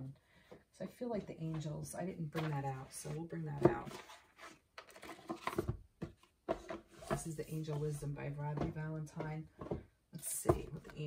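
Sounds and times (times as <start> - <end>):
rustling of box and cards: 1.4 - 9.9.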